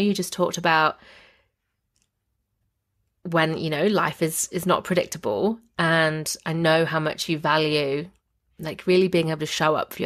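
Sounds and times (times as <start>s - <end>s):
faint breath: 1.0s - 1.6s.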